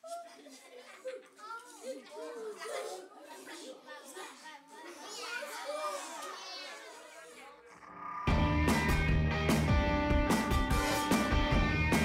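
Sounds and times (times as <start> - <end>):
children chattering and calling out: 0.0 - 8.4.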